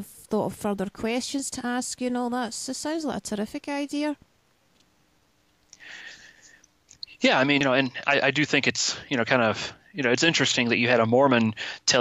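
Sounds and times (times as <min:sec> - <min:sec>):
woman speaking: 0:00.0 - 0:04.2
man speaking: 0:07.0 - 0:12.0.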